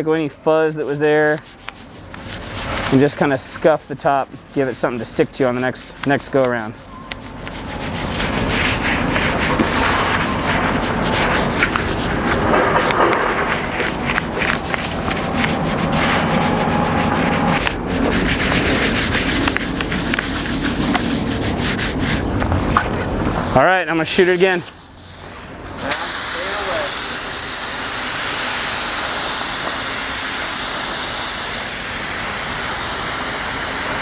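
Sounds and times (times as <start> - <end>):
sanding pad rubbing on wood: 0.0 - 34.0.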